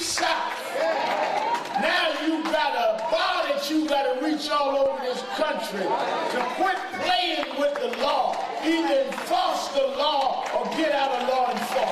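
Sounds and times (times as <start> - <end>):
man talking into a microphone: 0.0 - 0.5, 1.8 - 11.9.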